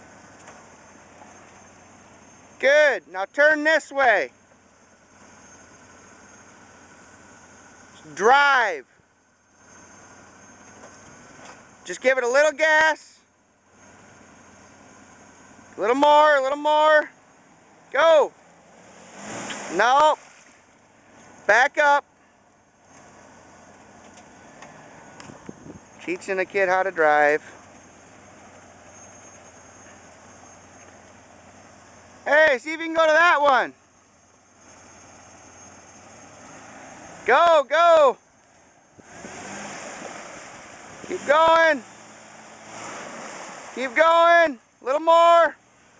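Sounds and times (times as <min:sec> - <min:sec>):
car engine idling faintly: 0:00.0 - 0:45.9.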